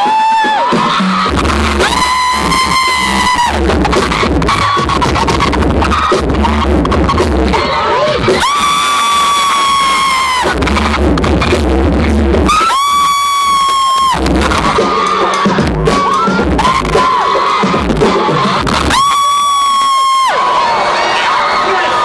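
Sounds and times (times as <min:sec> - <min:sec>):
amplified music with heavy bass: 0:00.0 - 0:20.4
audience screaming and cheering: 0:00.0 - 0:22.0
long high-pitched screams: 0:01.7 - 0:03.7, 0:07.7 - 0:10.6, 0:12.5 - 0:14.3, 0:18.8 - 0:22.0.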